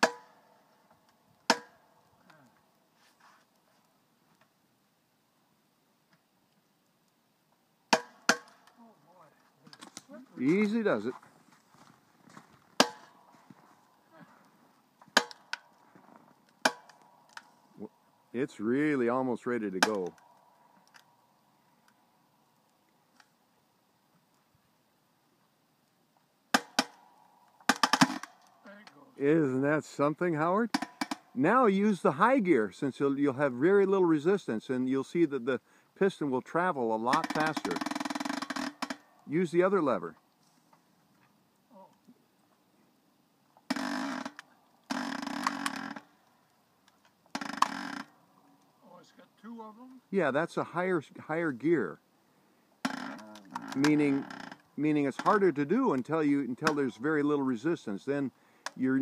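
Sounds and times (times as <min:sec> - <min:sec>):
log cracking apart: 0:00.0 - 0:02.8, 0:07.9 - 0:17.8, 0:19.7 - 0:23.5, 0:25.8 - 0:29.0, 0:43.5 - 0:48.8, 0:52.8 - 0:56.8.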